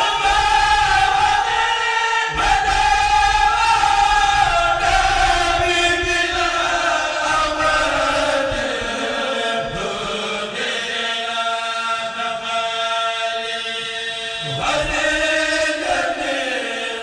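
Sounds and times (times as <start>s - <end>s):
men's choir chanting in unison: 0.0s - 17.0s.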